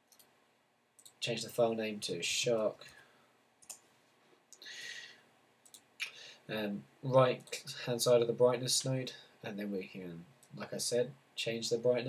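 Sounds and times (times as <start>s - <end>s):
computer mouse clicks: 1.0s - 1.2s, 3.6s - 3.8s, 5.6s - 5.9s
man talking: 1.1s - 3.0s, 6.0s - 12.0s.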